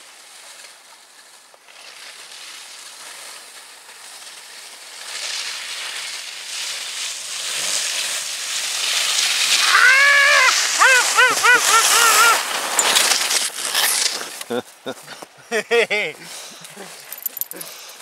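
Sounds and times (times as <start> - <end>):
skis scraping over snow: 0.0 - 17.1
person whooping: 9.6 - 12.5.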